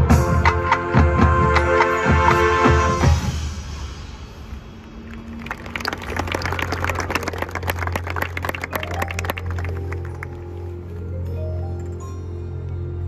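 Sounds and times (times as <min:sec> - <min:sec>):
audience applauding: 0:05.1 - 0:10.5.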